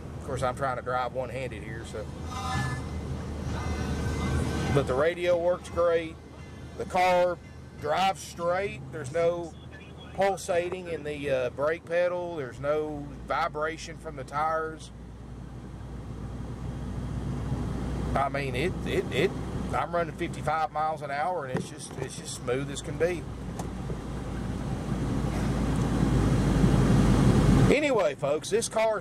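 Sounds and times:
low engine rumble: 0.0s - 29.0s
road noise inside car: 0.0s - 29.0s
music from car stereo: 2.3s - 10.5s.

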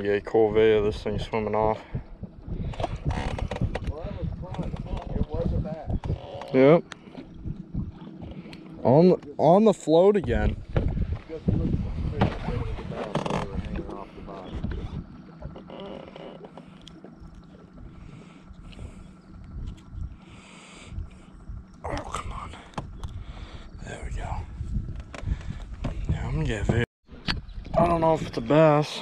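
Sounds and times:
wind noise on microphone: 0.0s - 6.6s, 7.2s - 8.5s, 10.2s - 15.5s, 17.2s - 28.7s
faint steady hum: 0.0s - 26.8s.

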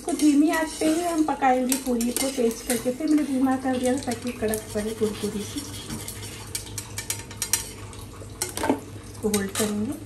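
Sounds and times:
frying oil crackling pops: 6.5s - 9.8s.

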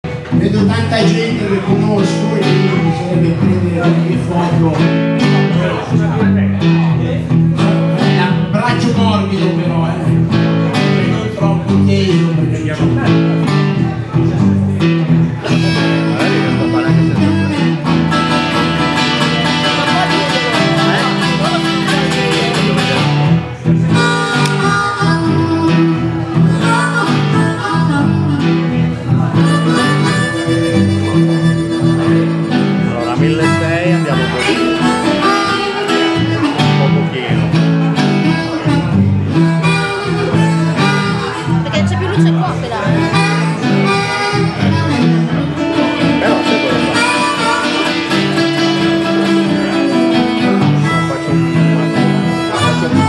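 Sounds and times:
blues harmonica: 0.0s - 53.0s
resonator guitar fingerpicked: 0.1s - 53.0s.

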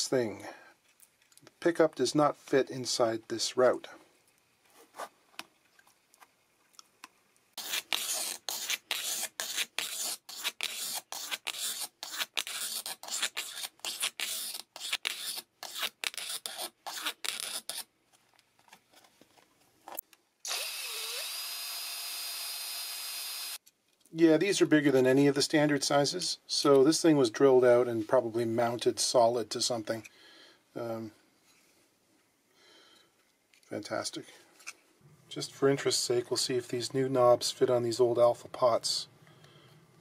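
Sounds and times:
file rasping plastic: 7.6s - 17.9s
small power tool running: 20.5s - 23.6s.

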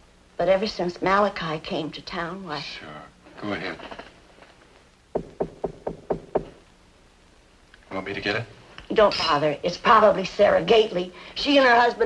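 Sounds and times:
knocking on a door: 5.1s - 6.6s.

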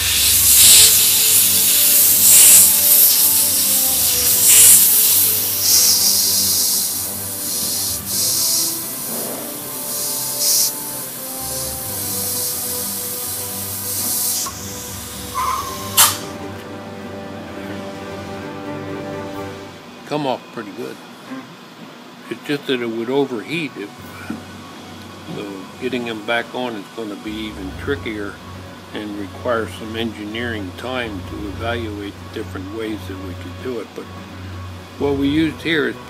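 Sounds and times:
hot air blower hissing: 0.0s - 20.0s, 23.5s - 36.0s
steady low tones: 6.8s - 20.1s, 24.0s - 36.0s.

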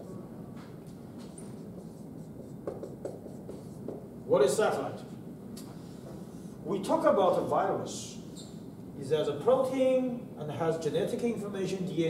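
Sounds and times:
marker writing on whiteboard: 0.9s - 4.2s.

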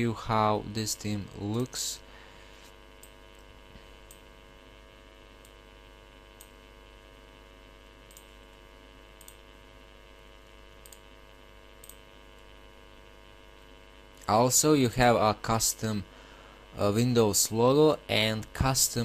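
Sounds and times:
electrical hum: 0.0s - 19.0s
faint mouse clicks: 6.4s - 6.6s, 8.1s - 8.3s, 9.2s - 9.4s, 10.8s - 11.1s, 11.8s - 12.5s.

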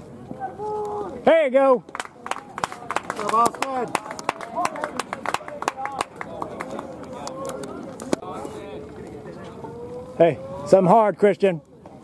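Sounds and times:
players and spectators calling: 0.4s - 11.5s.

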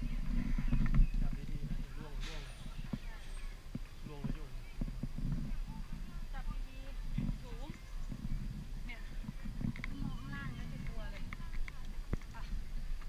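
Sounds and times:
people talking: 5.4s - 7.9s, 8.8s - 12.7s.

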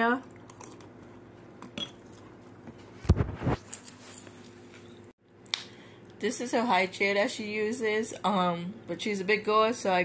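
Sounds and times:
metal spoon clinking ceramic bowl: 1.8s - 2.0s.

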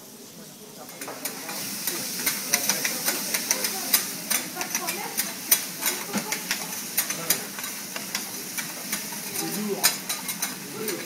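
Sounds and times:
food sizzling on a griddle: 0.0s - 11.0s.

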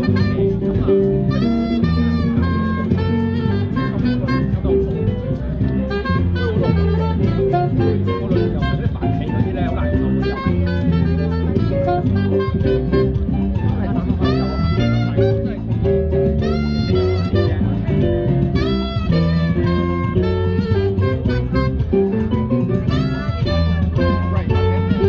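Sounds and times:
keyboard: 0.0s - 25.0s
saxophone melody: 0.0s - 25.0s
upright double bass: 0.0s - 25.0s.

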